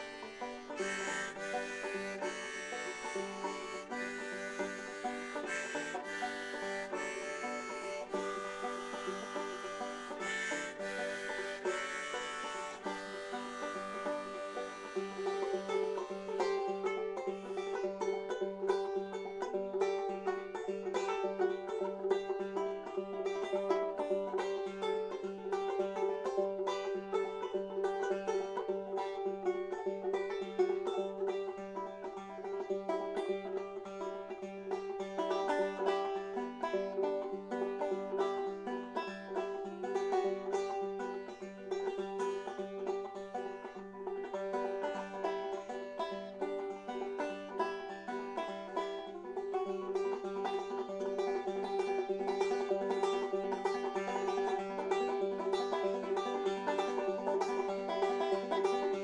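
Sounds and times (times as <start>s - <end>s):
banjo picking: 0.0s - 59.0s.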